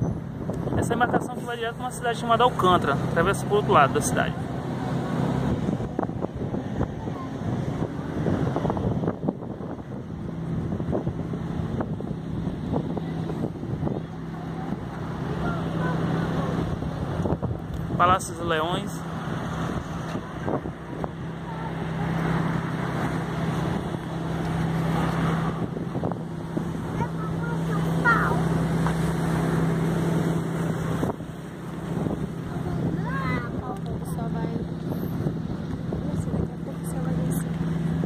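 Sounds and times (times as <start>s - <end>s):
low motor drone: 0.0s - 38.0s
wind noise on microphone: 0.0s - 38.0s
people talking: 26.9s - 28.4s, 32.4s - 34.7s, 35.9s - 37.5s.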